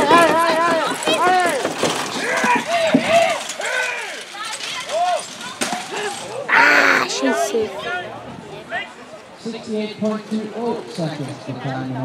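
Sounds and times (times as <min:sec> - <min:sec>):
voices shouting short calls: 0:06.4 - 0:08.1.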